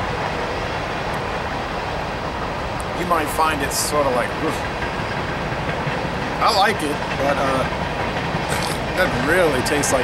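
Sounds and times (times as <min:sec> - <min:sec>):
train rumbling past: 0:00.0 - 0:10.0.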